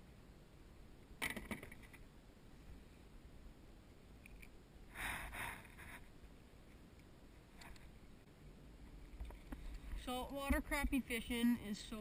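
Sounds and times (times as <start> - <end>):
knocks and rattles on kayak: 1.2 - 2.0.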